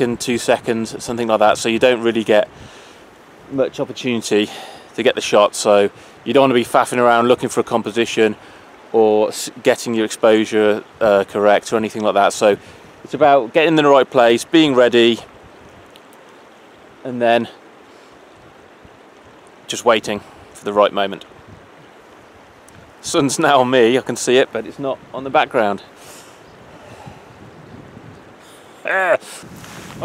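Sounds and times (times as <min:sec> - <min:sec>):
wind over microphone: 0:00.0 - 0:03.6, 0:21.2 - 0:23.4, 0:26.4 - 0:30.0
small waves lapping on shore: 0:00.0 - 0:30.0
wind hiss: 0:00.0 - 0:30.0
man's short exclamation: 0:28.8 - 0:29.5.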